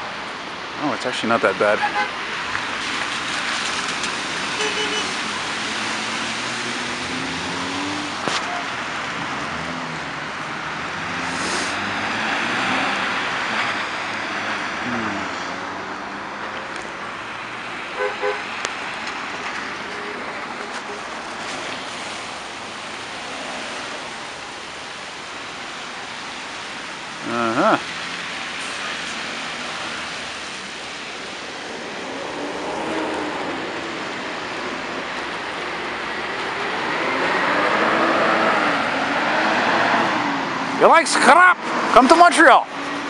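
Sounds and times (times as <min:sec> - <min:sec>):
car engines pulling away: 0:00.0 - 0:43.0
car horn toots: 0:01.7 - 0:02.1, 0:04.6 - 0:05.2, 0:18.0 - 0:18.5
tyre hiss on wet road: 0:01.7 - 0:13.5, 0:18.0 - 0:40.3.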